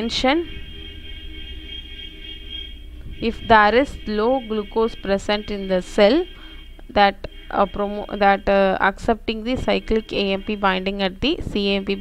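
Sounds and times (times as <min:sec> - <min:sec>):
faint high tones: 0:00.0 - 0:11.0
low background hum: 0:00.0 - 0:12.0.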